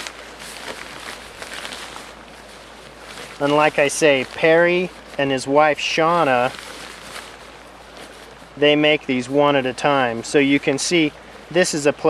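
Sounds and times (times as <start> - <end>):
fabric rustling: 0.0 - 9.1
soft fabric crinkles: 0.0 - 12.0.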